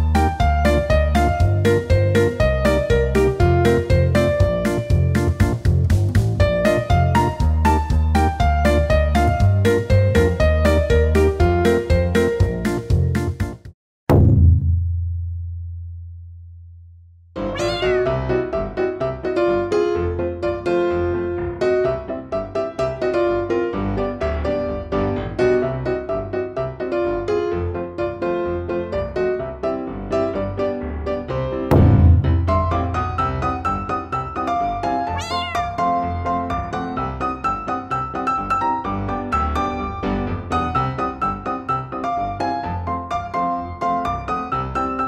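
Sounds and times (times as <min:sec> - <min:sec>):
piano background music: 0:00.0 - 0:13.7, 0:17.4 - 0:45.0
deep boom: 0:14.1 - 0:16.5, 0:31.7 - 0:33.6
high meow-like sound effect: 0:17.4 - 0:18.2, 0:35.2 - 0:35.9.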